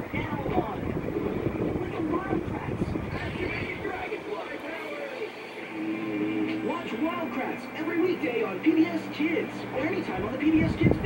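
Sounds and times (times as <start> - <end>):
voices on television: 0.0 - 11.0.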